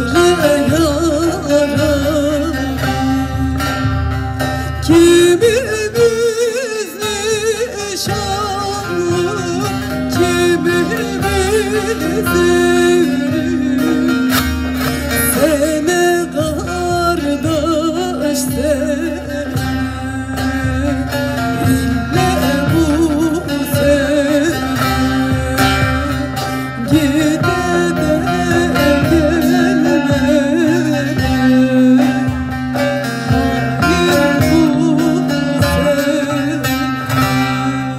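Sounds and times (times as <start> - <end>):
guitar: 0.0 - 37.9
plucked long-necked lute: 0.0 - 37.9
woman singing ornamented notes: 4.8 - 37.9.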